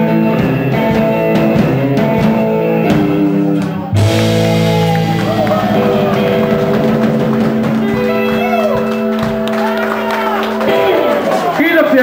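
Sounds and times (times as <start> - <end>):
rock band holding a chord: 0.0 - 11.6
people shouting: 4.4 - 7.0, 7.8 - 11.6.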